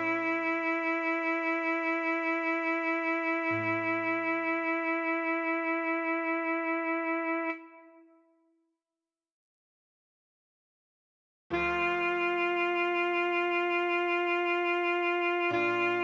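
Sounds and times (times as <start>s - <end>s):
alto saxophone long note: 0.0s - 4.4s, 11.5s - 16.0s
soft low accompaniment: 11.5s - 16.0s.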